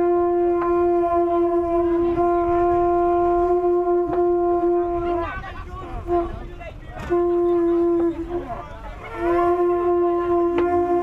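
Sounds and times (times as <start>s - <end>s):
conch shell horn blowing: 0.0s - 11.0s.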